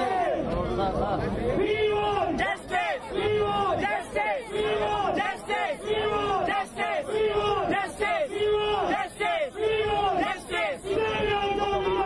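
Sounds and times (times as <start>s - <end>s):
crowd chanting in unison: 0.0s - 0.6s, 1.5s - 12.0s.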